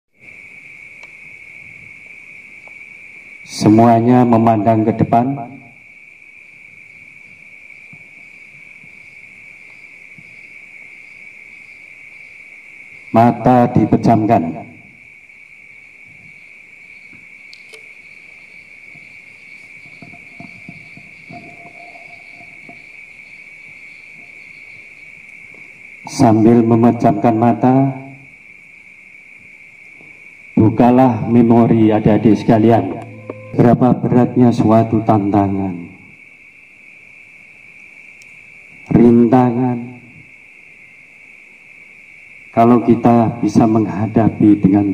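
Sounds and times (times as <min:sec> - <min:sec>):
crickets chirring: 0:00.2 - 0:44.9
man talking over microphone: 0:03.5 - 0:05.6, 0:13.2 - 0:14.7, 0:30.6 - 0:35.8.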